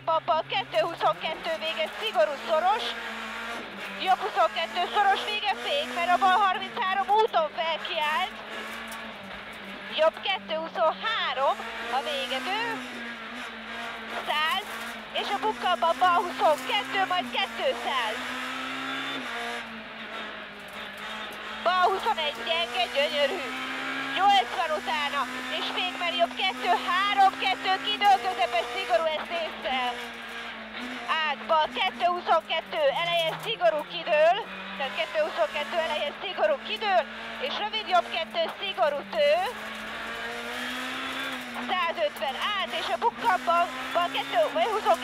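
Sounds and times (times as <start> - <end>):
rally car engine revving: 0.0 - 45.0.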